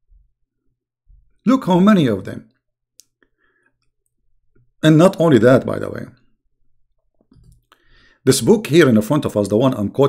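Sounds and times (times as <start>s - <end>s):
man speaking: 1.4s - 2.6s, 4.8s - 6.3s, 8.3s - 10.0s.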